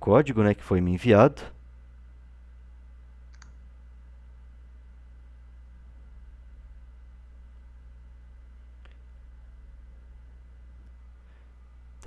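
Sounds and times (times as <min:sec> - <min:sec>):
low electrical hum: 0:00.0 - 0:12.0
faint click: 0:03.3 - 0:03.6.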